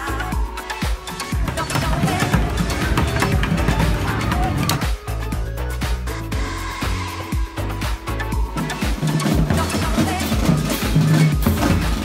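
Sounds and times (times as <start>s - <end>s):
drumming on plastic buckets: 0.0s - 5.0s, 7.9s - 12.0s.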